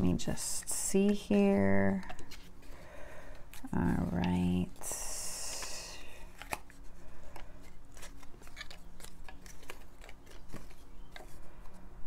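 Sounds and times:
paper crinkling: 0:01.1 - 0:12.0.

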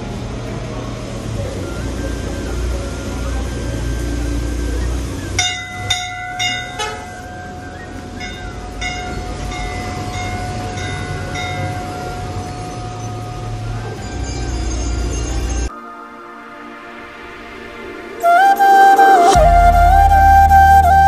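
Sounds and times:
steady ringing tone: 0:02.2 - 0:18.0
metal bells struck: 0:05.4 - 0:15.7.

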